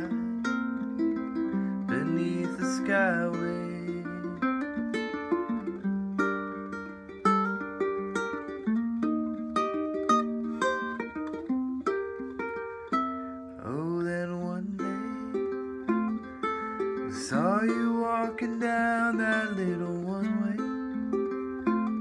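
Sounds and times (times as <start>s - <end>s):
ukulele plucked notes: 0.0s - 22.0s.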